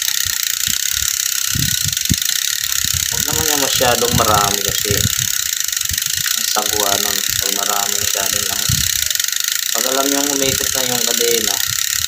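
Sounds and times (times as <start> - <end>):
bicycle hub ratchet clicking: 0.0 - 12.0.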